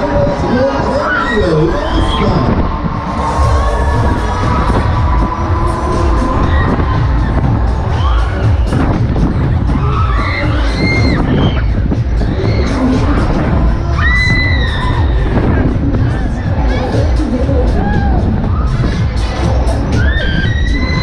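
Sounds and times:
crowd shouting and cheering: 0.0 - 21.0
dance music with heavy bass beat: 0.0 - 21.0.

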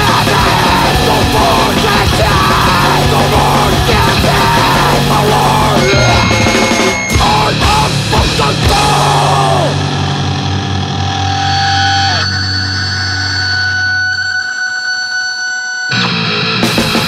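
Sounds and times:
fast heavy band playing: 0.0 - 11.4, 15.9 - 17.0
distorted guitar chord ringing: 0.0 - 17.0
high guitar feedback tones: 0.0 - 17.0.

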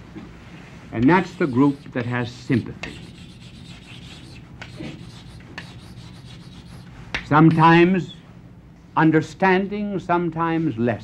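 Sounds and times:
chalk scratching on blackboard: 1.0 - 6.9.

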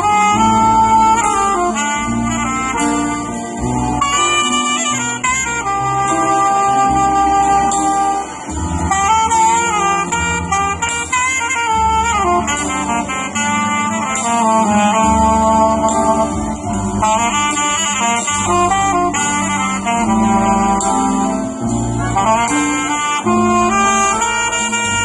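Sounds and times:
drum kit: 0.0 - 25.0
electronic keyboard: 0.0 - 25.0
saxophone melody: 0.0 - 25.0.

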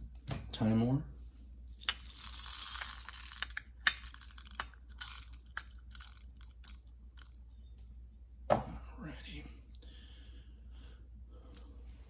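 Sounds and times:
coffee beans pouring: 1.8 - 7.4.

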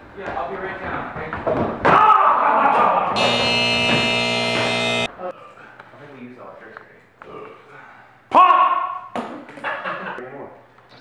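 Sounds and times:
person shouting: 8.3 - 9.1.

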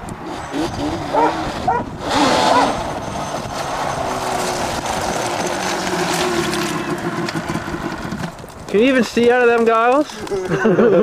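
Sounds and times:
quad engine running: 0.1 - 8.6.

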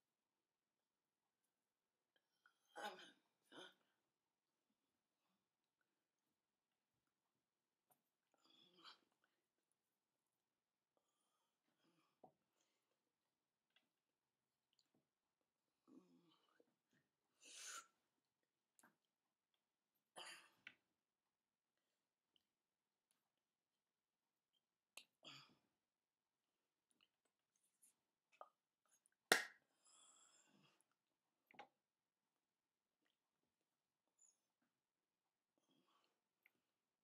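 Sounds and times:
hands slapping together: 29.3 - 29.6.

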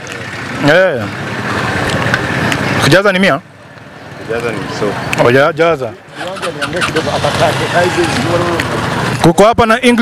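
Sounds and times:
indistinct talking: 0.2 - 10.0.

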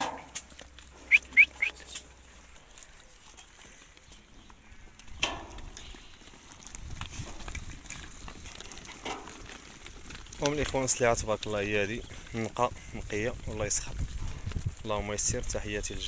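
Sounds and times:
sheep flock milling: 0.0 - 16.0
high rising chirps: 1.0 - 1.8.

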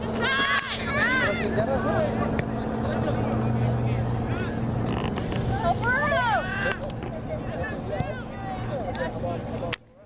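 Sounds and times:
players and spectators calling: 0.0 - 3.4
low mechanical hum: 0.0 - 10.0.

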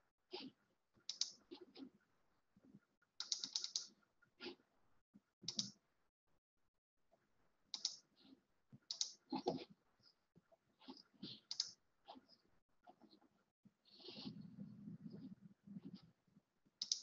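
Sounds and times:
computer keyboard typing: 1.1 - 1.4, 3.2 - 3.9, 5.5 - 5.7, 7.8 - 8.0, 8.9 - 9.2, 11.5 - 11.8.

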